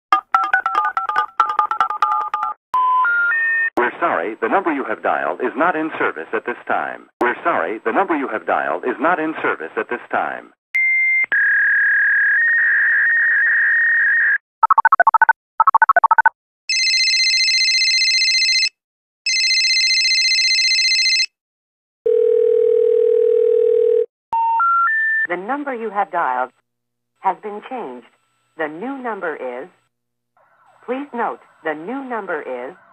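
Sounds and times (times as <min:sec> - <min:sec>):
three rising telephone tones: 0:14.6 - 0:16.3
telephone keypad beeps: 0:14.6 - 0:17.0
telephone dial tone: 0:14.6 - 0:18.7, 0:19.3 - 0:21.3, 0:22.1 - 0:24.5
electronic telephone ringer trilling: 0:14.6 - 0:21.3.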